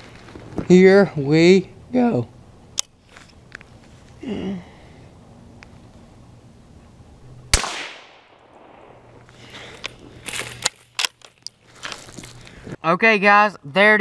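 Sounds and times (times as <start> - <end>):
rifle shot: 7.5 - 9.2.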